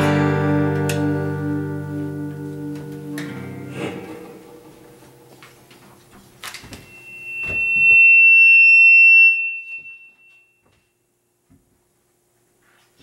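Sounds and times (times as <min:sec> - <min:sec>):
high-pitched feedback squeal: 0:06.8 - 0:10.8.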